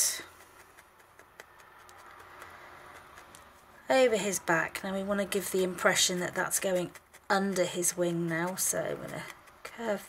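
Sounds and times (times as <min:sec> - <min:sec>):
wool being pressed by hand: 0:00.0 - 0:10.0.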